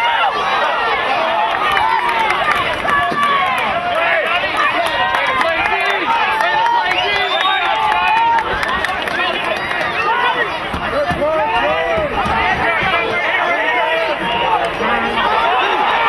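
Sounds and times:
crowd shouting: 0.0s - 16.0s.

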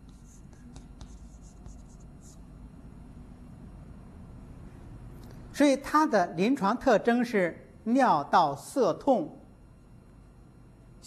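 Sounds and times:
chalk scratching on blackboard: 0.0s - 2.5s
chalk tapping on blackboard: 0.0s - 2.5s.

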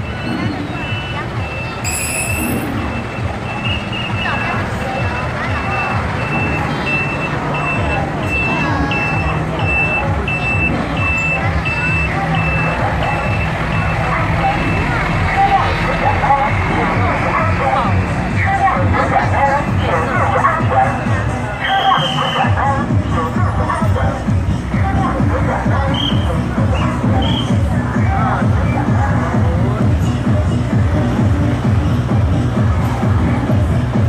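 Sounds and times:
truck warning beeper: 0.0s - 15.2s
diesel trucks passing: 0.0s - 34.0s.

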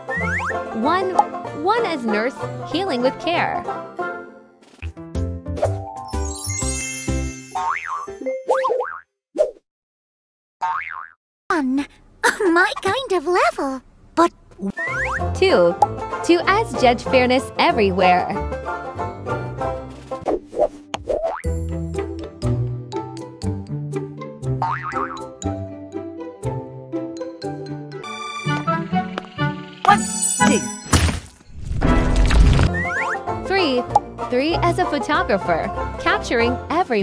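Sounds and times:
bouncy children's music: 0.0s - 4.3s, 4.9s - 8.5s, 14.8s - 20.1s, 21.4s - 30.9s, 32.7s - 37.0s.

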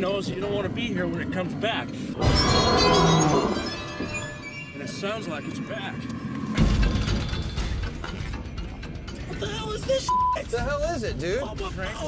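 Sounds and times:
tense music: 0.0s - 12.0s.

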